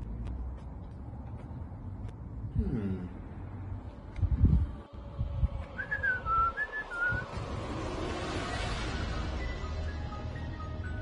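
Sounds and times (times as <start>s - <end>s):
person whistling: 5.8s - 7.4s.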